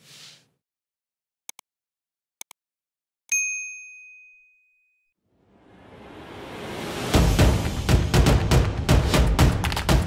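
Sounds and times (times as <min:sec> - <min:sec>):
bright bell ding: 0:03.3 - 0:05.1.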